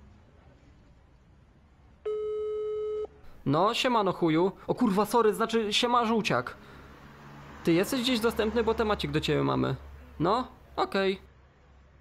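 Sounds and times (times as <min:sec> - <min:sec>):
telephone ringback tone: 0:02.1 - 0:03.2.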